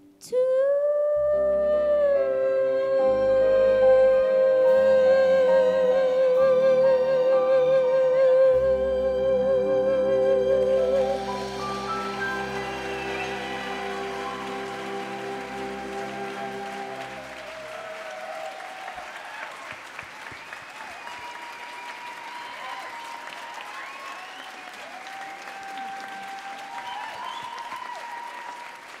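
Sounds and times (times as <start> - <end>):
orchestra holding a chord: 8.6 - 18.1
audience applauding: 10.9 - 29.0
high calls from audience: 11.0 - 29.0.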